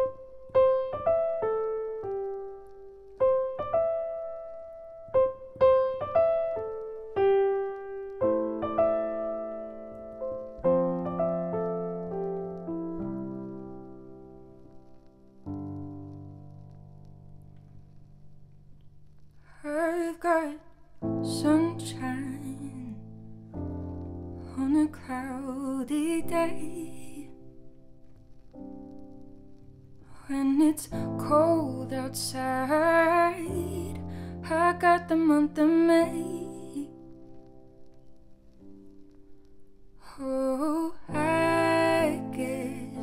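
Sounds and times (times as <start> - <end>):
woman singing with vibrato: 40.1 - 43.0.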